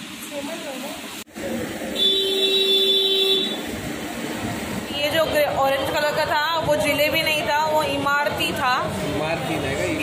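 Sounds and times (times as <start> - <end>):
vehicle horn held note: 2.0 - 3.6.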